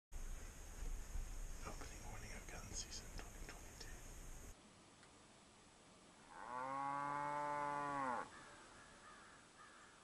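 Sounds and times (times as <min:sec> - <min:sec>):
cow mooing: 0:06.3 - 0:08.3.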